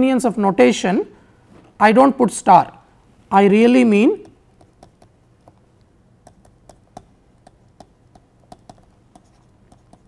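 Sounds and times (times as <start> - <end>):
stylus tapping on pen tablet: 4.2 - 5.6, 6.2 - 10.0.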